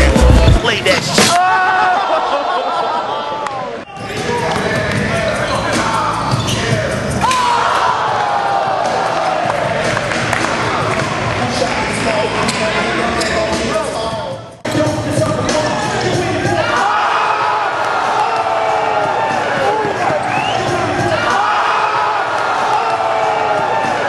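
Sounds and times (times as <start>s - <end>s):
voices echoing in gym: 3.9s - 7.8s, 10.6s - 24.0s.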